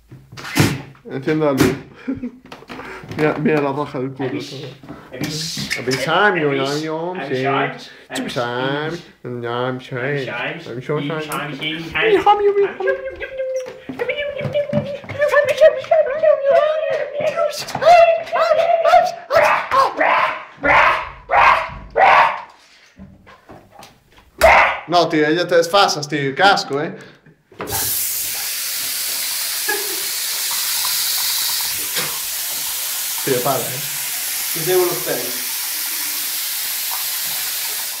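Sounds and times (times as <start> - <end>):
man shouting rough yells: 15.3 - 22.5, 24.4 - 24.9
steady hiss: 27.7 - 38.0.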